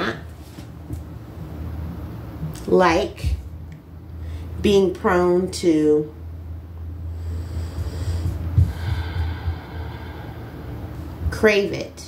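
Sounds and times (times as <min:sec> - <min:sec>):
steady low rumble: 0:00.0 - 0:12.0
breath in through nose: 0:07.2 - 0:11.0.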